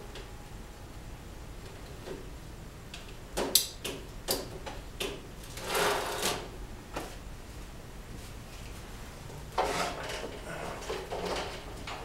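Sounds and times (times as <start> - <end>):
metal scrape: 9.6 - 11.5.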